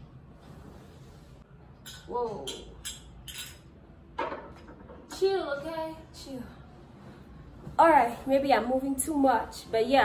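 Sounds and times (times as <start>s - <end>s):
glass and metal candle holder clinking: 1.8s - 3.7s.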